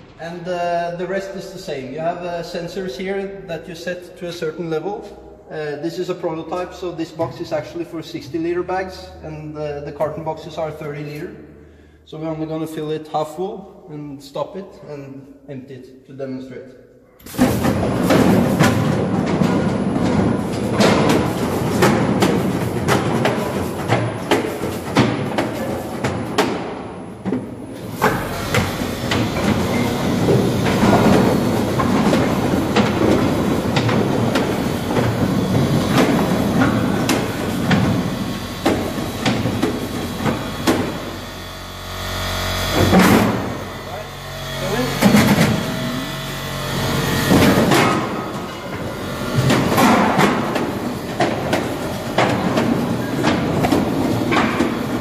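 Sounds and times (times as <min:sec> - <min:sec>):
low machine hum: 0:17.4 - 0:55.0.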